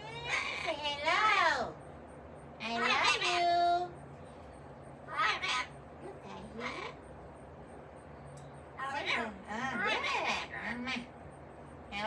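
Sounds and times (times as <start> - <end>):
parrot calling: 0.0 - 1.8, 2.6 - 4.0, 5.0 - 7.0, 8.8 - 11.2.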